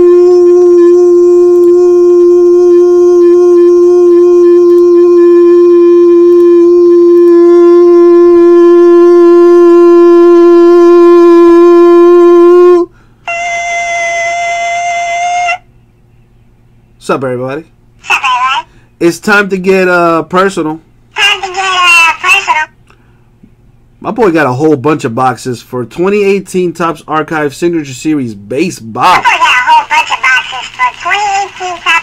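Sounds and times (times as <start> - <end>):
man holding a loud sung note: 0.0 - 15.6
man breathing: 12.9 - 13.3, 22.9 - 23.4.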